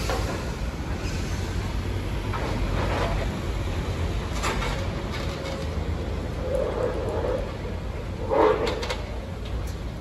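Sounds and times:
excavator low rumble: 0.0 - 10.0.

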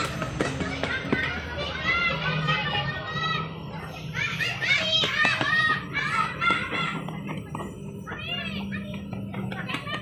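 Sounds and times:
children's voices at play: 0.0 - 10.0.

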